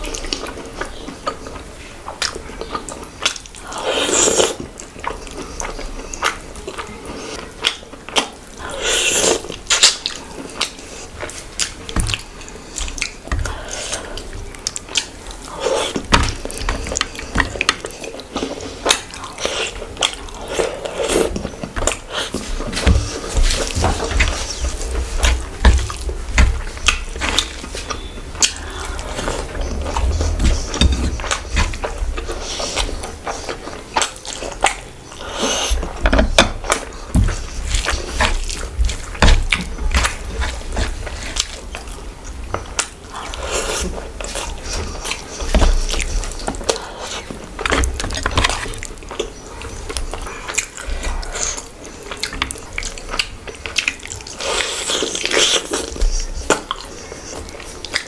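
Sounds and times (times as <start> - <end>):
wet chewing and lip smacking: 0.0 - 58.0.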